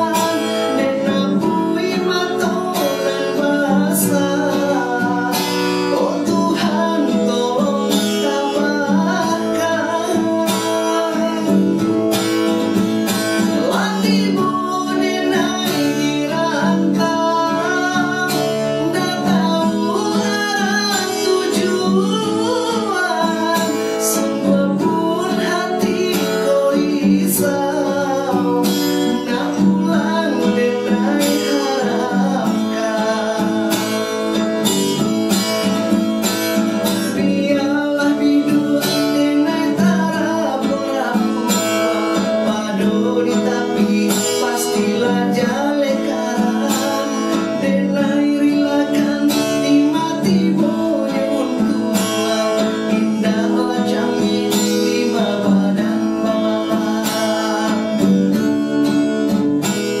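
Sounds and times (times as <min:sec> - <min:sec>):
man singing: 0:00.0 - 1:00.0
strummed acoustic guitar: 0:00.0 - 1:00.0.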